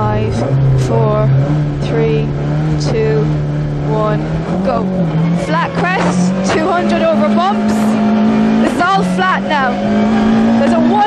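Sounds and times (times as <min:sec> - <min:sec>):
rally car engine revving: 0:00.0 - 0:11.0.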